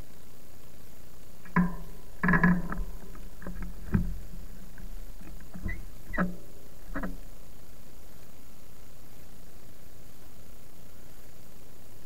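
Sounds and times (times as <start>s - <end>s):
steady hiss: 0.0s - 12.0s
bike creaks and knocks: 1.4s - 7.3s.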